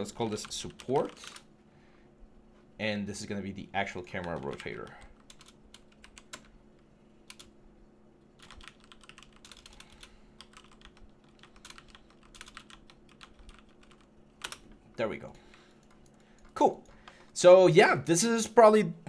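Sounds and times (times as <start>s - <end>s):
computer keyboard typing: 0.0s - 1.5s, 3.9s - 6.6s, 7.2s - 7.5s, 8.4s - 15.0s, 15.7s - 17.4s
faint steady hum: 0.0s - 19.0s.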